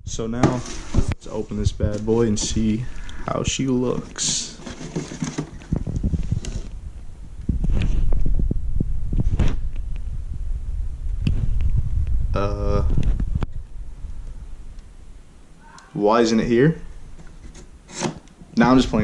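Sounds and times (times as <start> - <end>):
cardboard box handling noise: 3.8 - 6.7.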